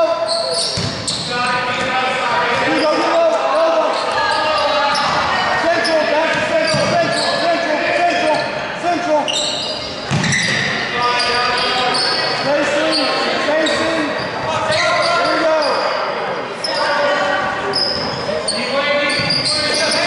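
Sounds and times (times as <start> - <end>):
sneakers squeaking: 0.0 - 8.6, 9.2 - 20.0.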